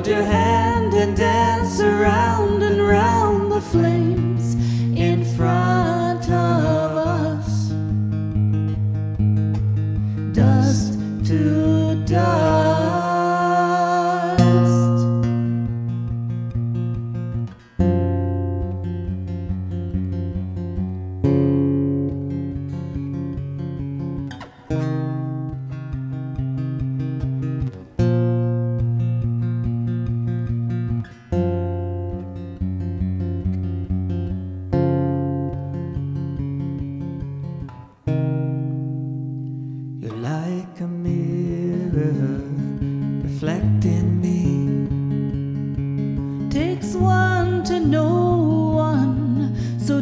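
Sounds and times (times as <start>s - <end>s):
acoustic guitar chords: 0.0s - 50.0s.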